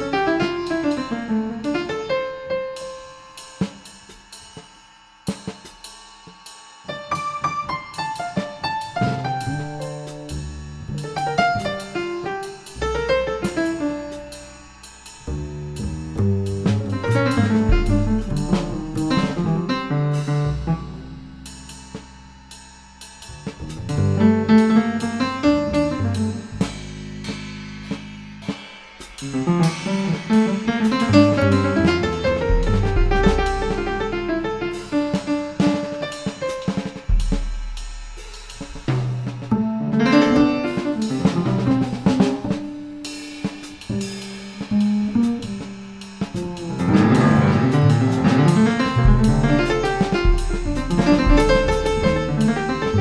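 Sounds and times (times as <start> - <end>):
drum kit with cymbals: 0.0 - 53.0
piano: 0.0 - 53.0
plucked double bass: 9.0 - 21.8, 23.4 - 28.4, 29.4 - 35.3, 38.6 - 42.9, 46.3 - 53.0.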